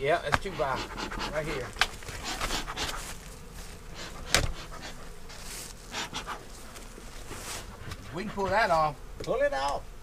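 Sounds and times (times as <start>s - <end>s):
bellows puffing: 0.2s - 9.0s.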